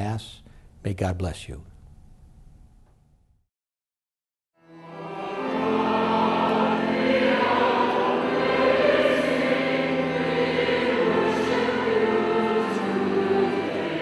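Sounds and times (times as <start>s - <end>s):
choir singing sustained chords: 4.6s - 14.0s.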